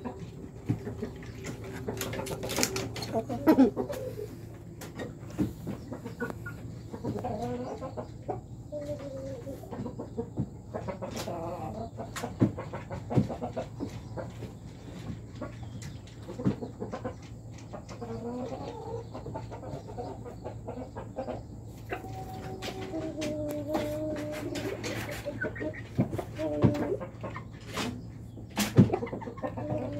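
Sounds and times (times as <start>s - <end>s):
young chickens clucking: 0.0s - 29.9s.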